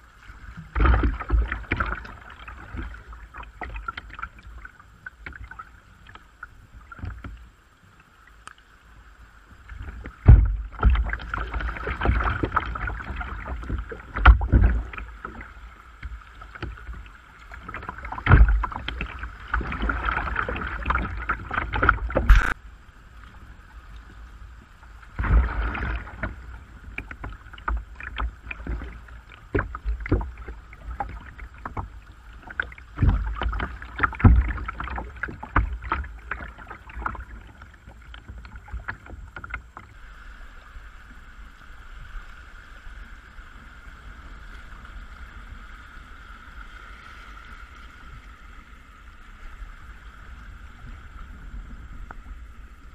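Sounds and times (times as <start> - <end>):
water splashing against kayak hull: 0.0 - 52.9.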